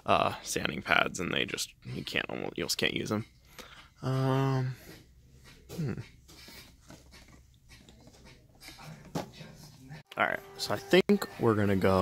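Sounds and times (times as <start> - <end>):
man humming hmm: 4.0 - 4.8, 5.7 - 6.2.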